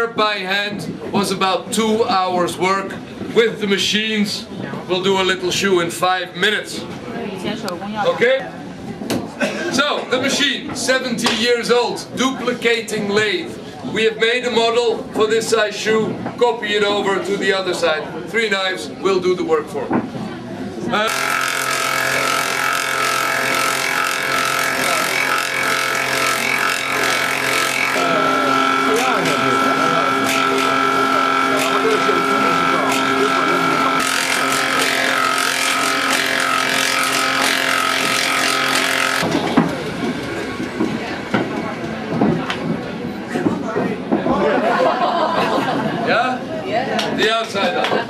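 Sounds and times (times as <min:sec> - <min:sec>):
people chattering: 0:00.0 - 0:21.2, 0:26.8 - 0:38.3, 0:39.2 - 0:48.0
rasp of wood cutting: 0:21.0 - 0:39.4
lathe motor whine: 0:21.0 - 0:41.8.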